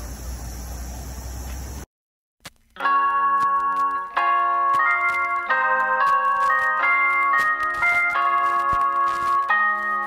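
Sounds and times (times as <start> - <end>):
bell-like chimes music: 2.8 - 10.0.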